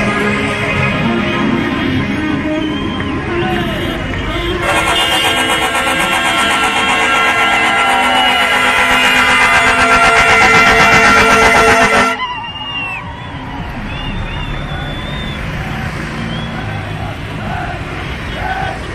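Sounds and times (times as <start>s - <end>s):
voices: 0.9s - 18.9s
vehicle horns honking: 3.4s - 12.2s.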